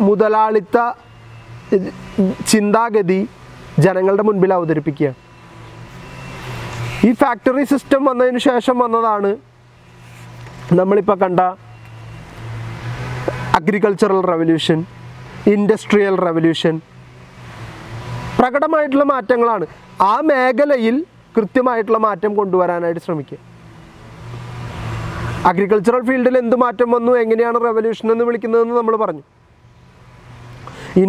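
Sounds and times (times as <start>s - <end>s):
man speaking: 0.0s - 1.0s, 1.7s - 5.2s, 7.0s - 9.5s, 10.7s - 11.6s, 13.5s - 16.9s, 18.4s - 23.5s, 25.4s - 29.3s
motor vehicle humming: 0.0s - 31.0s.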